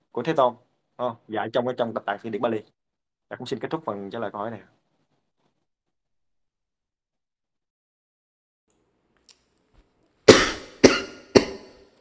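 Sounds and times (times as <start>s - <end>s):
man coughing: 10.3s - 11.9s.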